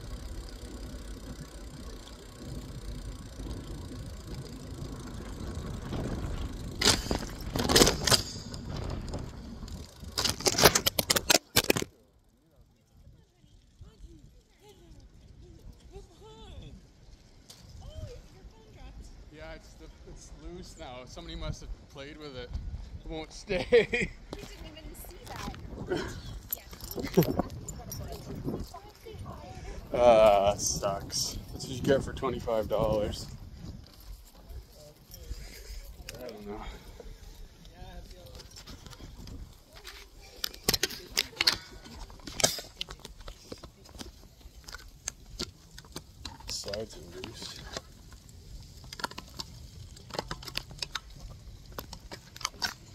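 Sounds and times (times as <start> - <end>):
sharp clicks and knocks of mount: 10.1 - 12.0.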